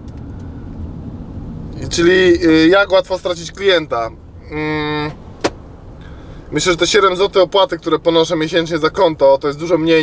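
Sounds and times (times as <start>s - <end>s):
van engine and road rumble: 0.0s - 10.0s.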